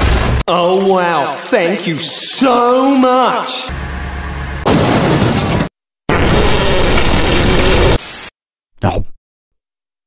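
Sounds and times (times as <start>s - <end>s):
cartoon explosion blast: 4.6s - 8.0s.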